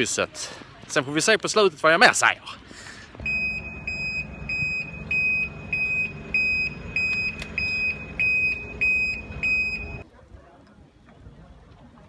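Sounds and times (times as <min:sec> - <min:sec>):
high-pitched electronic beeps: 0:03.2 - 0:10.0
steady low hum: 0:03.2 - 0:10.0.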